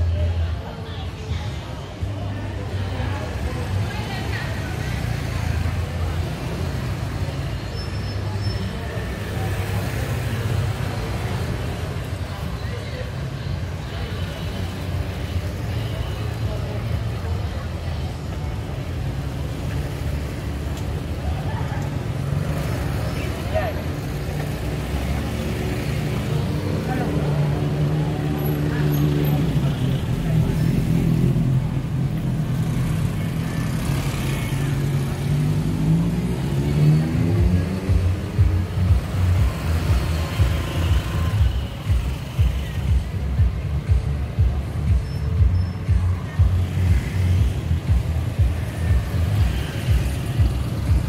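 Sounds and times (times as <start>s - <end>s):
motorbikes: 0.0s - 51.0s
people's voices: 0.0s - 51.0s
vehicle engines running: 0.0s - 51.0s.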